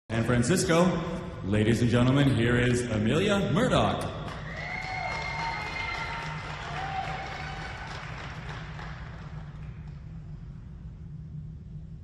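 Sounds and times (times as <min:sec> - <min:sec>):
audience applauding and cheering: 0:04.2 - 0:10.3.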